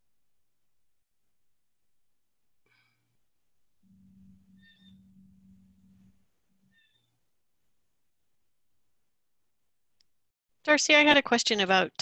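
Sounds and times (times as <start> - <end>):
faint low hum: 2.6 - 10.1.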